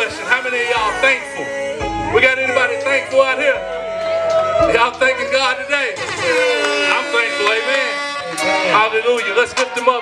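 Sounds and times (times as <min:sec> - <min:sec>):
instrumental backing track: 0:00.0 - 0:10.0
sustained gliding melodic notes: 0:00.0 - 0:10.0.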